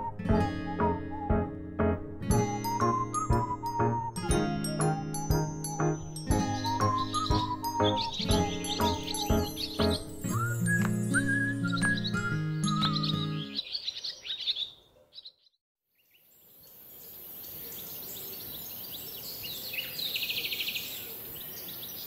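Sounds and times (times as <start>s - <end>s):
soundtrack music: 0.0s - 11.0s
birds chirping: 2.3s - 22.0s
birdsong: 2.3s - 22.0s
fast bird trill: 5.7s - 11.2s.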